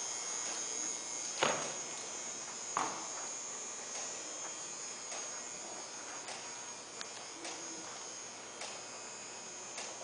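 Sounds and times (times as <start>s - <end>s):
high-pitched electrical whine: 0.0s - 10.0s.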